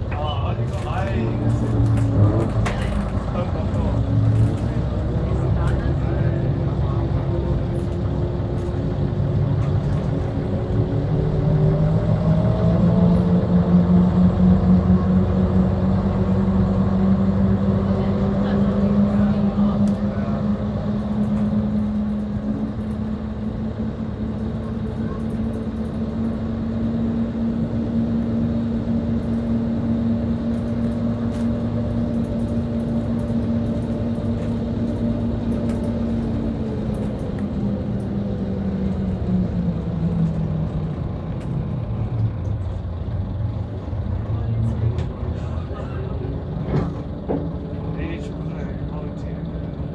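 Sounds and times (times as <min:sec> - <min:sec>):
bus engine accelerating and cruising: 0:00.0 - 0:49.9.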